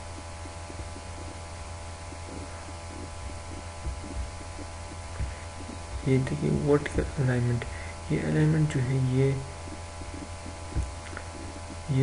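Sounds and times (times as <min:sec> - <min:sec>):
electrical mains hum: 0:00.0 - 0:12.0
soft low thumps: 0:00.0 - 0:12.0.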